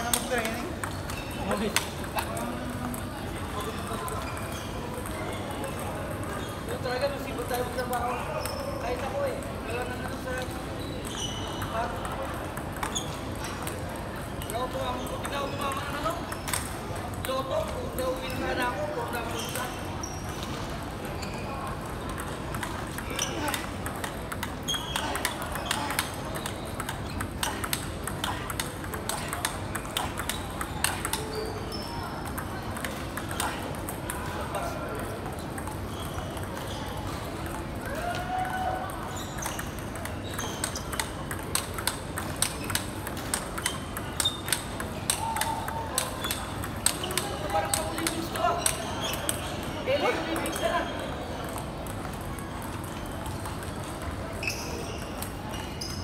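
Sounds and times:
table tennis ball clicks: 0:09.3 - 0:18.4, 0:21.7 - 0:37.9, 0:38.9 - 0:50.7.

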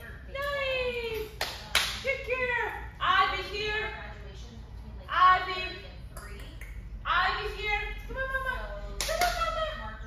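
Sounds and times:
hand claps: 0:01.1 - 0:02.0.

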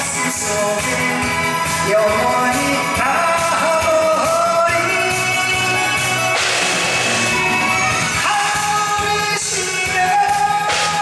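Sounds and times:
man singing into a microphone: 0:00.0 - 0:06.4, 0:08.1 - 0:11.0
amplified backing music: 0:00.0 - 0:11.0
cymbal crash: 0:06.4 - 0:07.8, 0:10.7 - 0:11.0.

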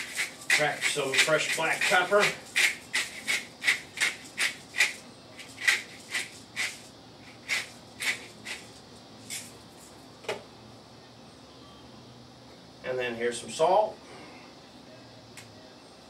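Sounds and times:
pepper mill grinding: 0:00.0 - 0:10.0.

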